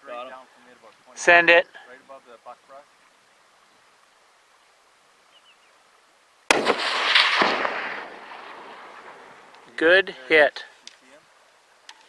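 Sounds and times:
rifle shot echoing: 0:06.5 - 0:09.8.

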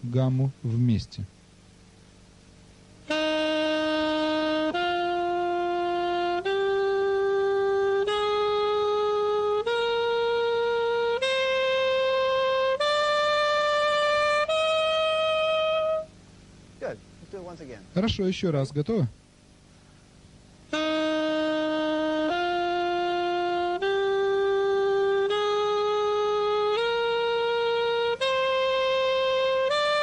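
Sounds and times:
saxophone playing a scale: 0:03.0 - 0:16.2, 0:20.7 - 0:30.0.

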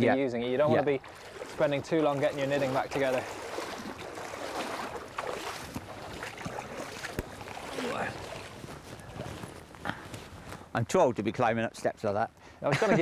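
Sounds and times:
water splashing and sloshing: 0:00.6 - 0:10.7.

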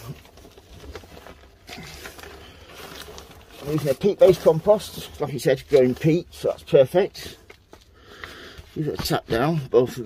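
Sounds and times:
compost rustling into plastic pot: 0:00.0 - 0:10.0.

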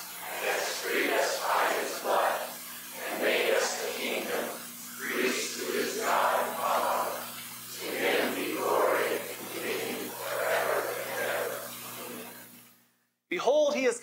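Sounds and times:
steady low hum: 0:00.0 - 0:13.0
many voices speaking in unison: 0:00.2 - 0:12.4.

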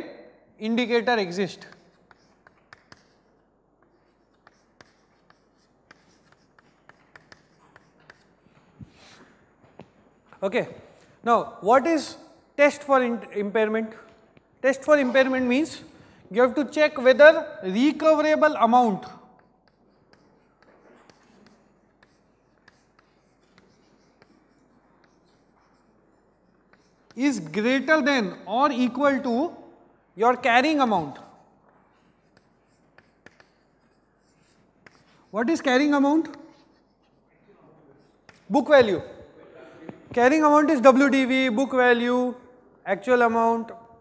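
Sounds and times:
chalk writing on chalkboard: 0:00.6 - 0:11.2, 0:11.8 - 0:42.0.

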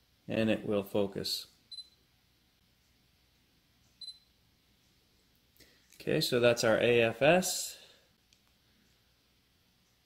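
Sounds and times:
high electronic camera beep: 0:04.0 - 0:04.3.

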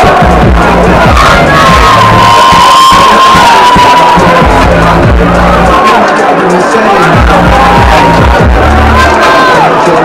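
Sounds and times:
crowd cheering and shouting: 0:00.0 - 0:10.0
loud music with deep bass: 0:00.0 - 0:10.0.

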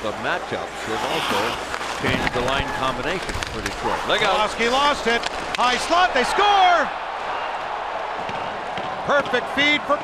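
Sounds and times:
arena crowd hubbub: 0:00.0 - 0:10.0.

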